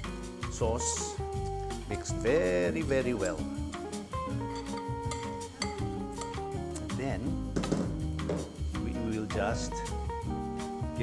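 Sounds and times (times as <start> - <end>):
background guitar music: 0.0 - 11.0
whisk and spoon clinking on bowl: 4.5 - 6.4.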